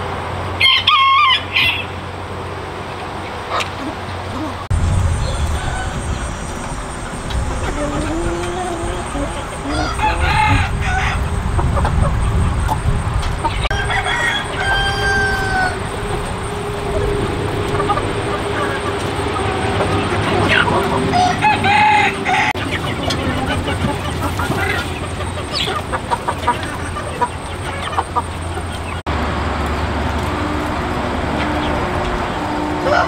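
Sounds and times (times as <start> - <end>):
chickens clucking: 0.0 - 33.0
rooster crowing: 0.6 - 2.0, 4.4 - 11.4, 13.4 - 22.7, 32.4 - 33.0.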